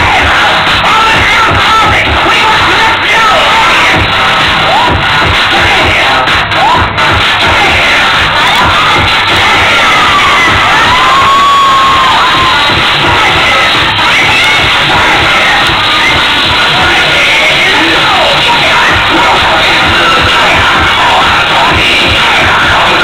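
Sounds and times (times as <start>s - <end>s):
audience cheering and shouting: 0.0s - 23.0s
dance music with bass beat: 0.0s - 23.0s
long held cry: 9.4s - 12.7s.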